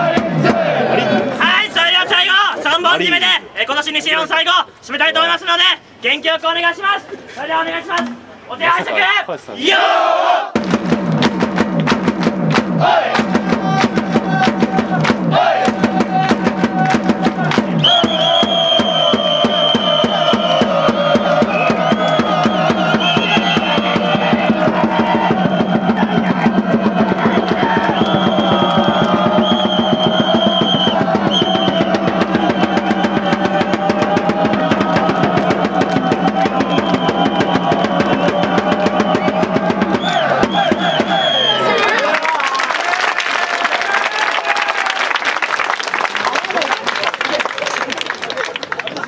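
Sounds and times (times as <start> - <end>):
fans chanting in unison: 0.0 - 1.4, 9.6 - 10.6, 12.8 - 41.8
drums beating fast rhythm: 0.0 - 1.6, 10.5 - 41.4.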